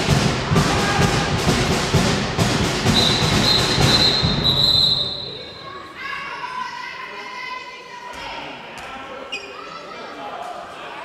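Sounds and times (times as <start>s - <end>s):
crowd noise in a sports hall: 0.0s - 11.0s
referee's whistle blast: 2.9s - 5.6s.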